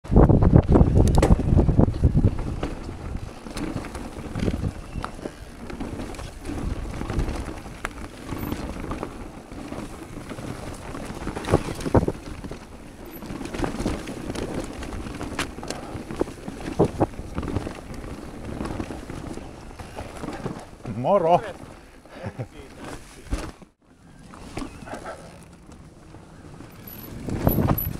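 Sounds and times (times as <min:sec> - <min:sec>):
wind buffeting microphone: 0:00.1 - 0:22.5, 0:24.2 - 0:27.9
bike tyres rolling on trail: 0:00.1 - 0:27.9
bike knocks and clatters: 0:00.6 - 0:20.9.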